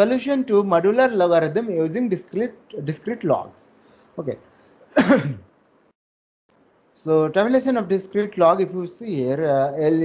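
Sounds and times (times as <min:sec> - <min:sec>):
man coughing: 0:04.9 - 0:05.5.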